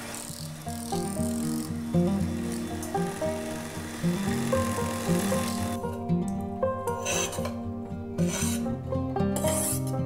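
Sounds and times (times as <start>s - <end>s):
electric hand mixer whirring: 0.0s - 5.8s
background music: 0.0s - 10.0s.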